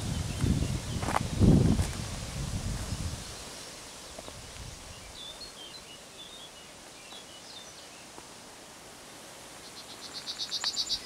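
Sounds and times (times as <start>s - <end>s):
low wind rumble: 0.0s - 3.5s
bird chirps: 9.6s - 11.0s.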